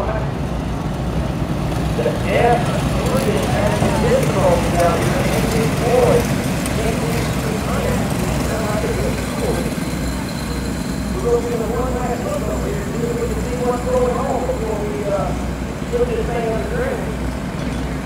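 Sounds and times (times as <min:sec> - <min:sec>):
go-kart engines racing: 0:00.0 - 0:18.0.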